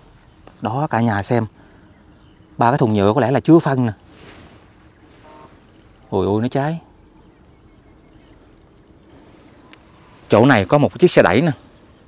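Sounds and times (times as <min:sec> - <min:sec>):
low steady outdoor hiss: 0:00.0 - 0:12.0.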